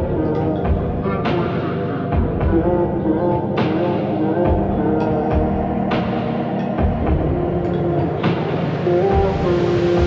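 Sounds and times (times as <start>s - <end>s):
instrumental pop music: 0.0s - 10.0s.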